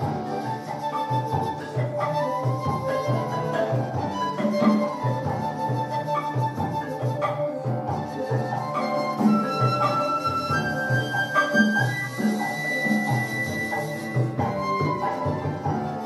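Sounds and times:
flute long held notes: 0.0 - 16.0
hand drums steady beat: 0.0 - 16.0
marimba: 0.0 - 16.0.

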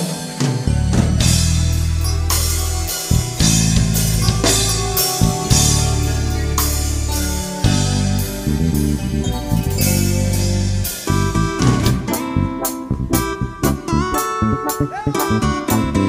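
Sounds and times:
drum kit: 0.0 - 16.0
electric bass: 0.0 - 16.0
electronic keyboard: 0.0 - 16.0.

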